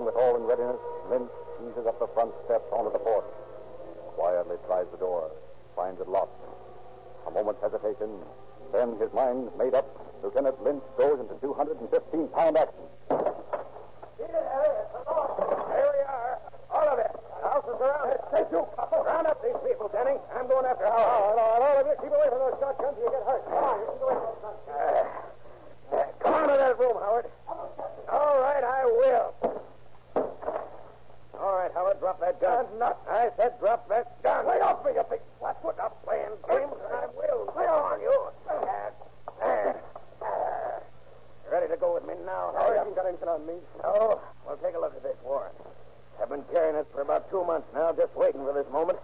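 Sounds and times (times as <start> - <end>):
steady low hum: 0.0 - 49.0
voices speaking: 0.0 - 49.0.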